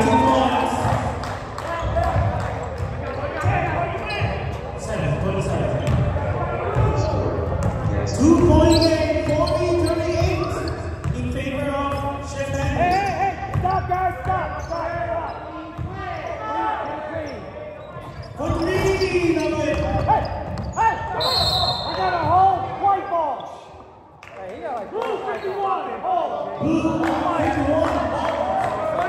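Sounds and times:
basketball bouncing: 5.8 - 11.3
sneakers squeaking: 6.7 - 16.4, 17.1 - 23.9.

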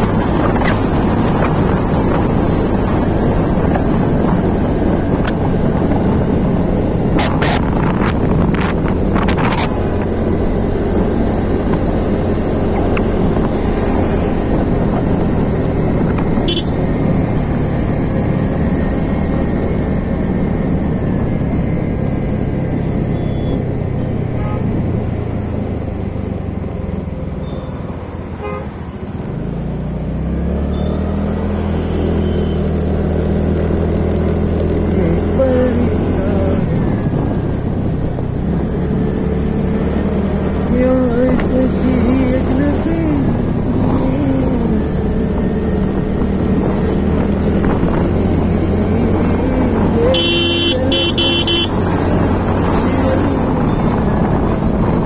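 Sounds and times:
traffic: 0.0 - 55.0
vehicle horn: 16.4 - 16.8, 24.4 - 24.8, 28.3 - 28.8, 50.0 - 51.9
scooter engine running: 50.1 - 51.9.

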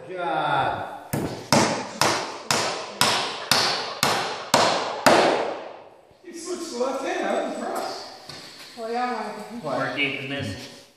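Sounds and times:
hammer blows on wooden beam: 1.1 - 5.7.

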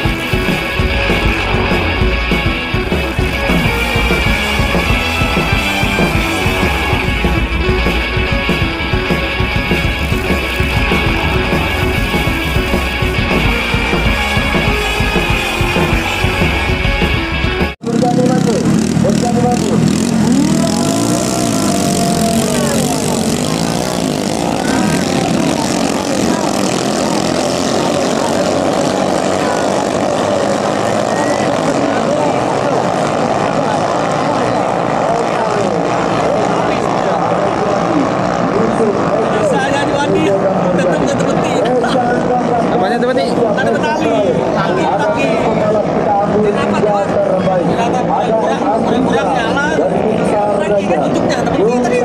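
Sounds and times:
small boat engines buzzing: 0.0 - 46.5.

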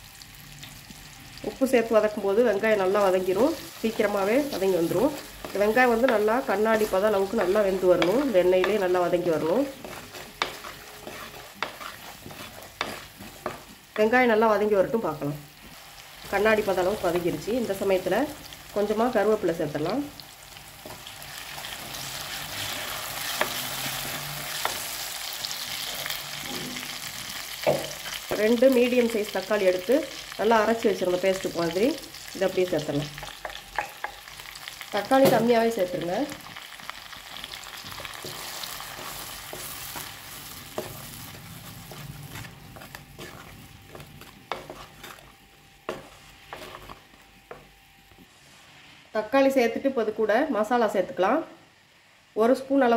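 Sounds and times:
shallots sizzling in hot oil: 0.0 - 47.8
spoon scraping clay pot: 4.4 - 14.1, 37.9 - 47.2.

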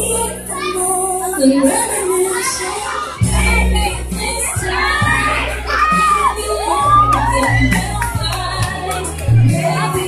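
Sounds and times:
children shouting and cheering: 0.0 - 10.0
music with steady bass line: 0.0 - 10.0.

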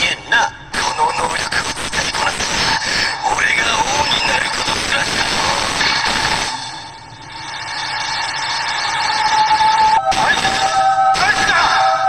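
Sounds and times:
steady high tones: 3.8 - 12.0
loud rushing noise: 4.3 - 11.4.

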